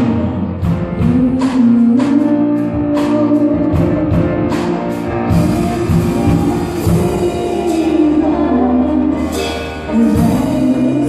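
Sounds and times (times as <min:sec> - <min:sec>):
gospel worship music: 0:00.0 - 0:11.0
piano: 0:00.0 - 0:11.0.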